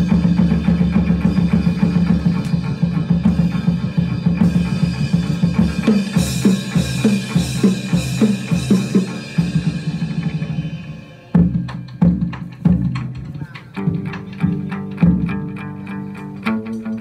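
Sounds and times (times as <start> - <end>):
drum beats: 0.0 - 17.0
plucked lute notes: 13.3 - 17.0.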